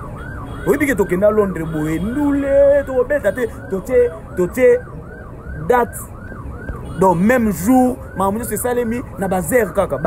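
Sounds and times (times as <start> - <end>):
siren wailing: 0.0 - 10.0
voices talking: 0.5 - 6.1.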